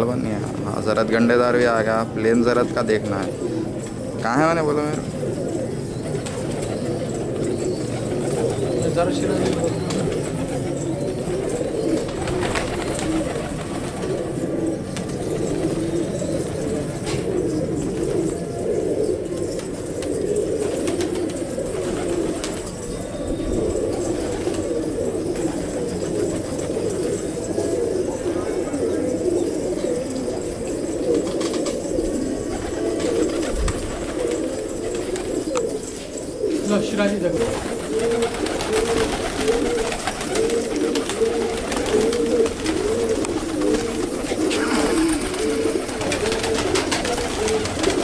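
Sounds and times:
pigeons cooing: 0.0 - 48.0.

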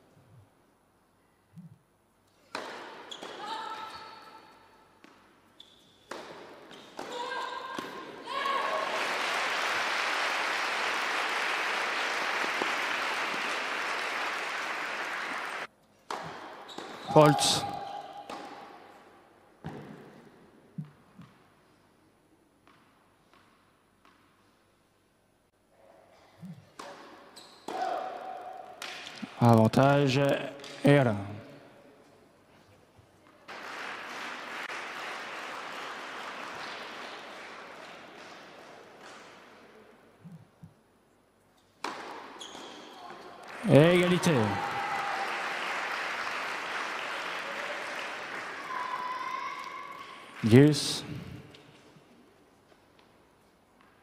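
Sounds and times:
tennis ball bouncing on court: 2.4 - 3.4, 6.0 - 8.2, 16.0 - 17.1, 18.3 - 18.8, 19.6 - 20.2, 20.8 - 21.4, 22.6 - 24.3, 26.7 - 28.0, 41.8 - 43.2
crowd applauding: 8.6 - 15.7, 33.5 - 38.6, 43.4 - 51.1.

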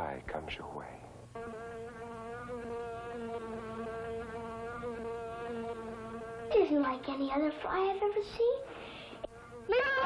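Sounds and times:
fly buzzing: 1.3 - 10.0.

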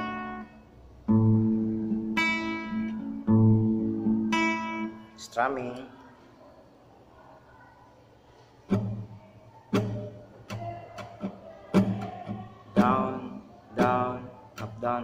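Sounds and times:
classical guitar strumming: 0.0 - 5.3, 8.6 - 15.0.

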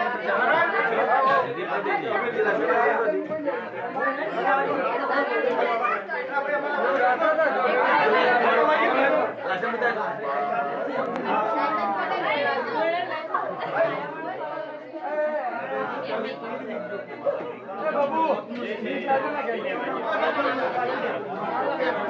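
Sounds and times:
men's voices chattering: 0.0 - 22.0.

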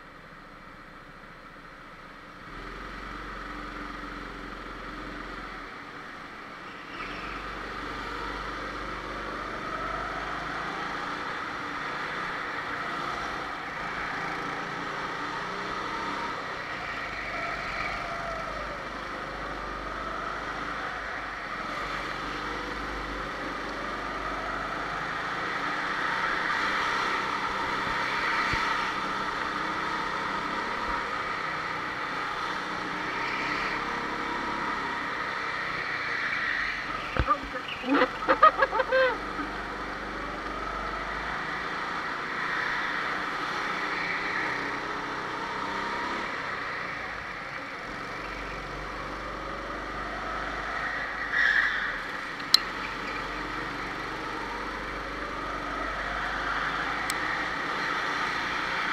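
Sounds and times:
go-kart engines running: 1.5 - 58.9.

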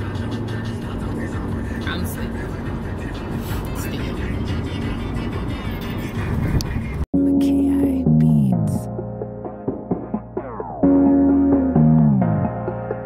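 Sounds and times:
road and engine rumble in car: 0.0 - 7.1
music playing: 0.0 - 13.0.

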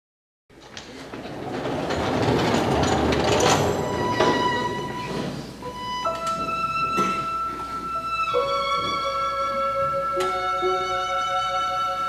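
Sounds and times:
steady rumbling and rattling: 0.5 - 5.7.

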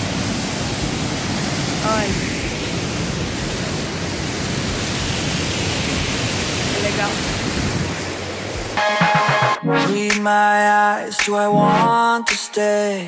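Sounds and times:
water pouring down waterfall: 0.0 - 8.8
background music: 8.8 - 13.0.

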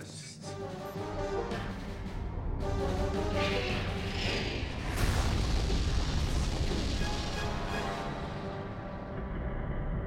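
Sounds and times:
dramatic orchestral music: 0.4 - 9.4.

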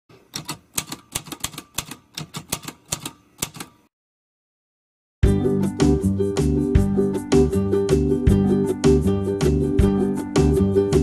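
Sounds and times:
typewriter keys clacking: 0.3 - 3.8.

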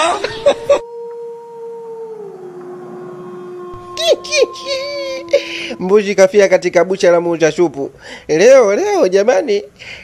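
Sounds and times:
long howl: 0.0 - 7.4.

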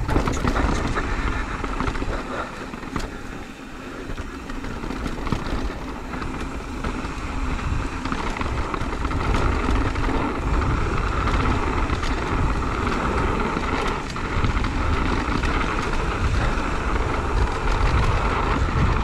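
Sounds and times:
bike clicks and rattles: 0.0 - 19.0
bike tyres on dirt: 0.0 - 19.0
wind rushing over microphone: 0.0 - 19.0.

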